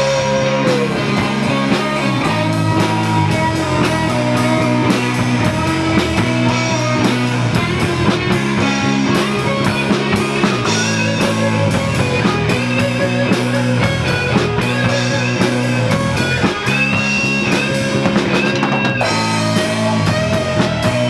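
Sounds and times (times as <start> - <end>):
live rock band instrumental: 0.0 - 21.0.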